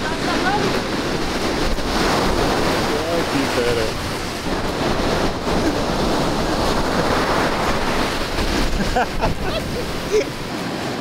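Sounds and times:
ocean surf breaking on beach: 0.0s - 11.0s.

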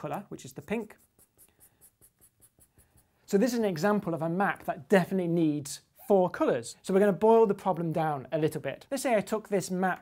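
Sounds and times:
marker scratching on paper: 0.0s - 3.3s.

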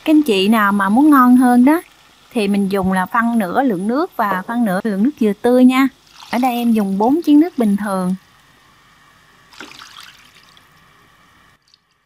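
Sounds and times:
water pouring into a pot: 6.0s - 7.3s, 9.5s - 10.8s.

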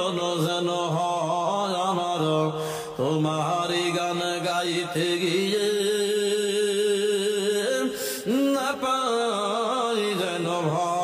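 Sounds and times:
man singing slow melody: 0.0s - 11.0s.

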